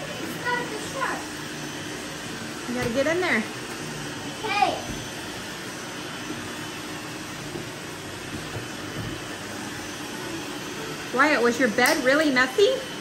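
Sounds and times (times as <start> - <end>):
robot vacuum cleaners humming: 0.0 - 13.0.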